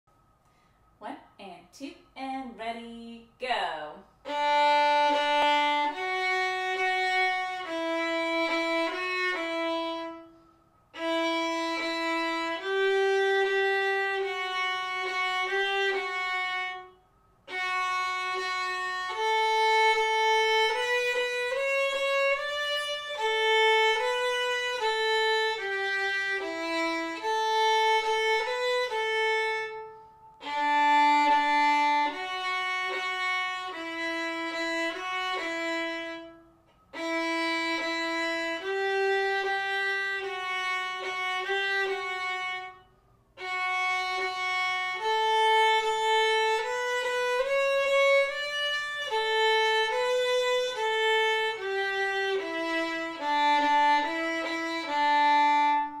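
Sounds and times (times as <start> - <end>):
violin melody: 4.2 - 56.0.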